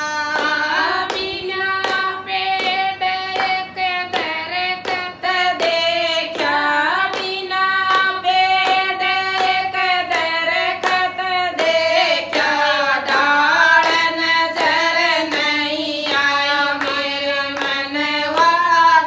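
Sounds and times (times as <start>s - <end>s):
hand claps: 0.0s - 18.9s
women singing devotional song: 0.0s - 19.0s.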